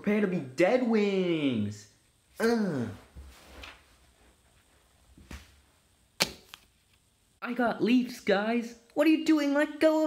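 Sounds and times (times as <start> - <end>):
toothpick striking paper: 6.2 - 6.7.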